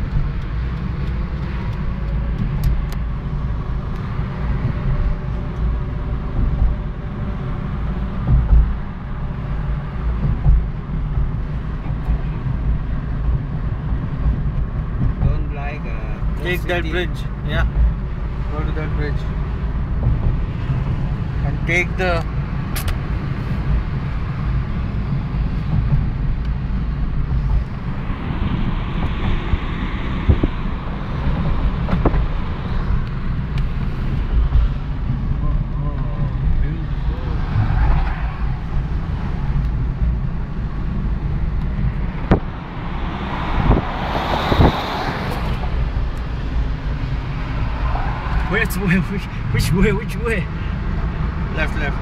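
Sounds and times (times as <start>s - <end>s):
car road noise rumble: 0.0s - 52.0s.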